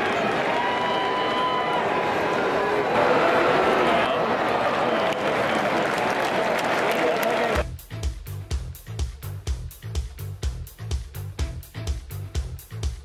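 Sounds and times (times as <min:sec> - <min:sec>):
stadium crowd talking and shouting: 0:00.0 - 0:07.6.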